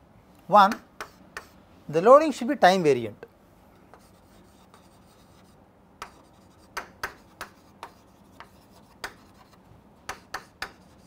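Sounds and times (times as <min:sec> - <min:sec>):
chalk strokes on chalkboard: 0:01.0 - 0:01.6, 0:04.0 - 0:11.0.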